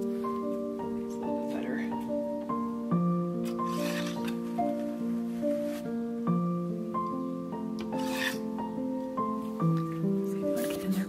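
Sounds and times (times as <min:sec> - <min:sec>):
instrumental music with held notes: 0:00.0 - 0:11.0
scratchy rasp of drum carder: 0:03.5 - 0:04.4, 0:07.9 - 0:08.5.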